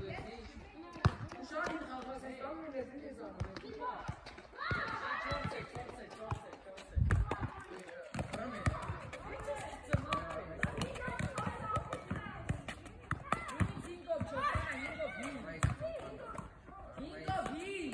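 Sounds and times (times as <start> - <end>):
children shouting: 4.6 - 5.5.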